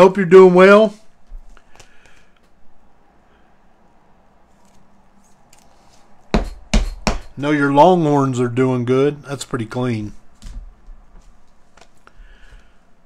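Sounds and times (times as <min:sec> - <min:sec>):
knocks on tabletop: 0:06.4 - 0:07.3.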